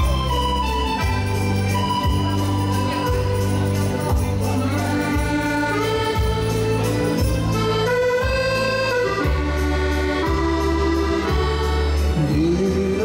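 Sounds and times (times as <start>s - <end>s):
accordion waltz melody: 0.0s - 13.0s.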